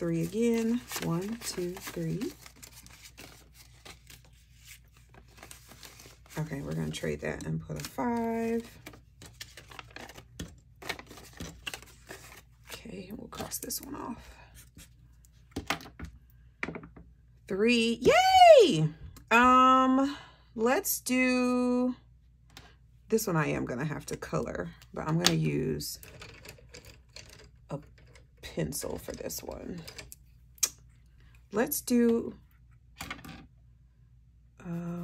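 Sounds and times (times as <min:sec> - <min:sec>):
paper rustling: 0:00.0 - 0:12.8.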